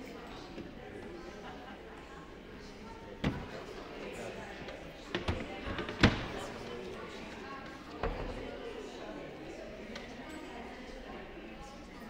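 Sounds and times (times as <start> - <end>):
faint conversation: 0.0 - 12.0.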